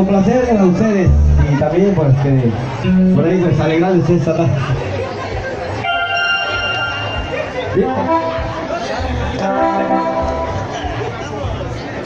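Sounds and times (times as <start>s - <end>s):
keyboard-led band through speakers: 0.0s - 12.0s.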